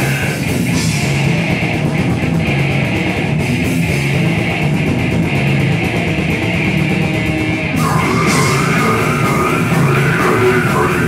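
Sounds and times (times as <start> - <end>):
harsh shouted vocals: 0.0 - 0.5, 7.8 - 11.0
bass guitar: 0.0 - 11.0
distorted electric guitars: 0.0 - 11.0
drums with crashing cymbals: 0.0 - 11.0.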